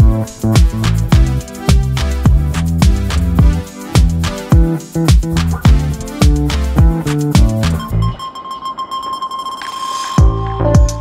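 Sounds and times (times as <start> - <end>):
high held electronic tone: 5.7 - 11.0.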